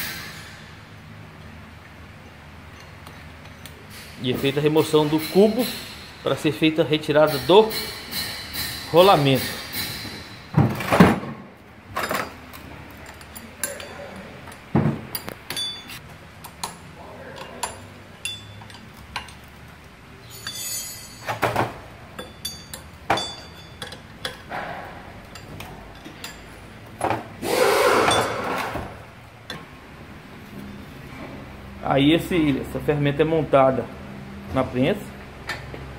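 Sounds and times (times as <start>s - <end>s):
metallic clinks of wrench: 2.7s - 6.5s, 7.1s - 10.5s, 15.1s - 16.0s, 17.4s - 19.5s, 20.2s - 21.4s, 22.1s - 24.5s
metal clatter and scrape: 7.2s - 11.2s, 20.2s - 21.8s.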